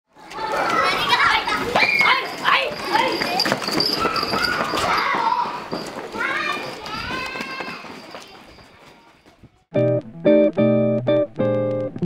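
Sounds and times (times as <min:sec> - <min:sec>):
children chattering and calling out: 0:00.1 - 0:09.7.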